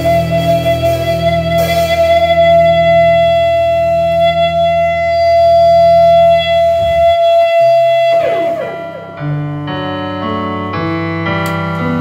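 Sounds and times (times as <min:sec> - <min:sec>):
high ringing guitar tone: 0:00.0 - 0:10.4
held low notes: 0:00.0 - 0:12.0.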